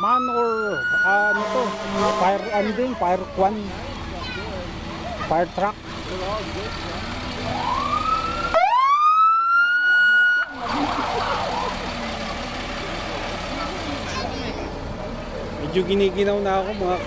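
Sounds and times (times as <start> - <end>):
fire truck siren wailing: 0.0 - 4.0, 5.8 - 13.5.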